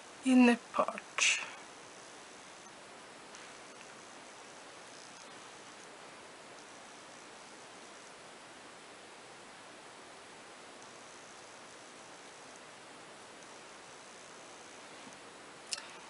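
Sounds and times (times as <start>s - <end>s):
microphone hiss: 0.0s - 16.0s.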